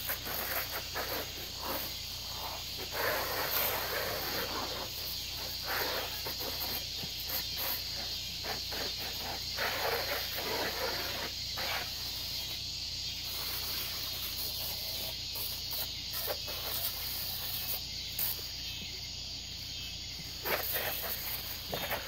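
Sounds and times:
insect chorus: 0.0s - 22.0s.

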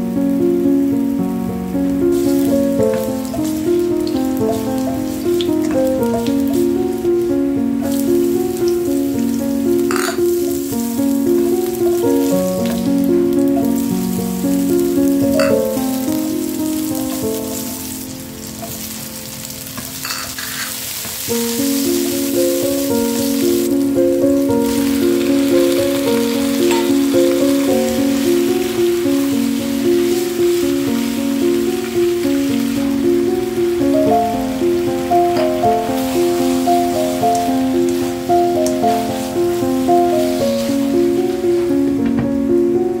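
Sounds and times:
instrumental background music: 0.0s - 43.0s
food sizzling in oil: 0.3s - 42.0s.

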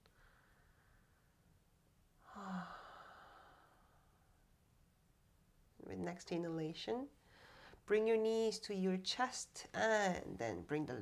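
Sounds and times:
person sighing: 2.2s - 3.8s.

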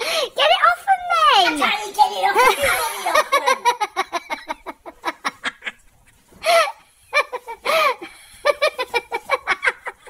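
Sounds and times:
people laughing: 2.4s - 10.0s.

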